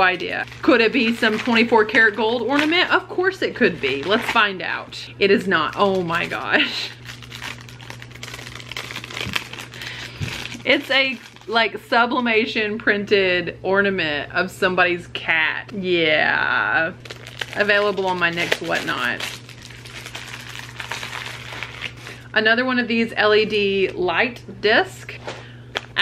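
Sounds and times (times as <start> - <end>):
plastic packaging crinkling: 0.0 - 11.8, 17.0 - 22.2
low steady hum: 0.0 - 26.0.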